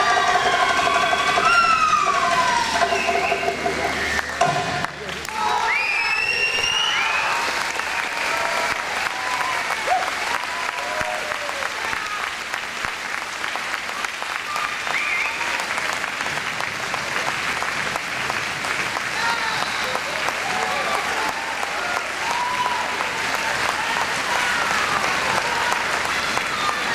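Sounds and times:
voices calling out and cheering: 0.0s - 12.5s, 18.9s - 26.9s
audience applauding: 0.0s - 26.9s.

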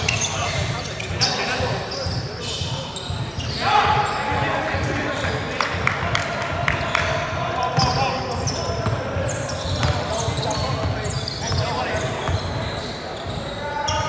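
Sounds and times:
sneakers squeaking on floor: 0.0s - 5.8s, 6.7s - 14.0s
players' voices: 0.0s - 14.0s
basketball bouncing on court: 1.6s - 12.7s.

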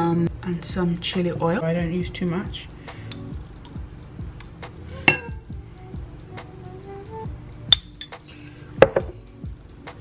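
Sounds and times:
soft background music: 0.0s - 10.0s
spoon clinking against glass jar: 5.1s - 5.4s, 7.7s - 8.2s.

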